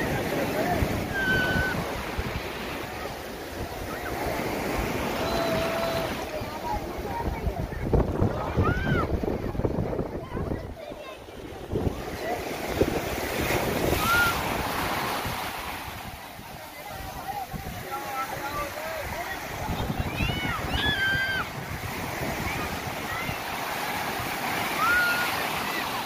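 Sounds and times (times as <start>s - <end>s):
wind buffeting microphone: 0.0s - 24.8s
surf breaking over sand: 0.0s - 26.0s
children shouting: 8.4s - 9.2s, 13.9s - 14.5s, 19.8s - 21.6s, 22.3s - 26.0s.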